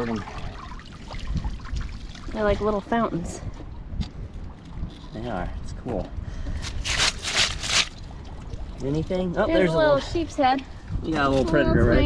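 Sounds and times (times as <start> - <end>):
oysters squirting water jets: 0.0 - 3.3
water splashing: 0.0 - 3.6
water pouring and trickling: 0.0 - 5.8, 6.8 - 11.4.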